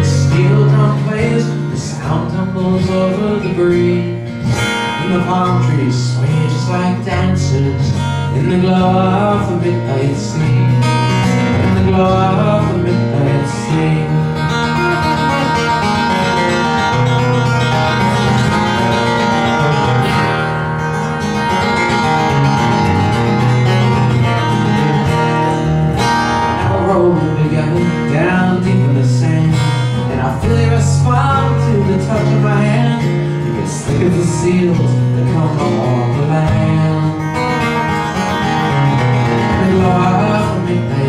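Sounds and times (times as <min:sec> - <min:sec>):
acoustic guitar playing: 0:00.0 - 0:41.0
bass notes: 0:00.0 - 0:41.0.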